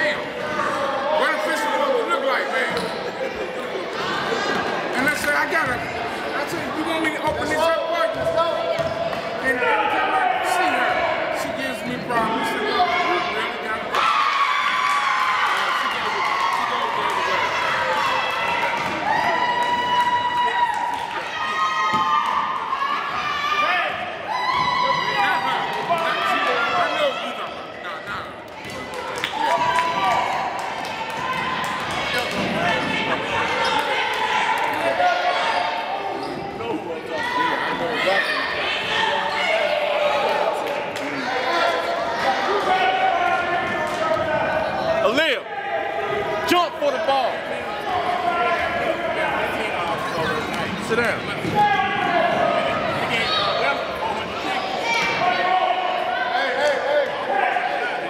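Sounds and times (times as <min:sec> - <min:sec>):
people shouting and calling: 0:06.5 - 0:58.0.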